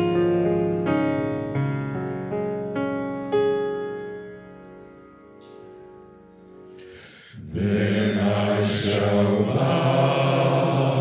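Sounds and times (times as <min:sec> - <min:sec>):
men's choir singing: 0:07.2 - 0:11.0.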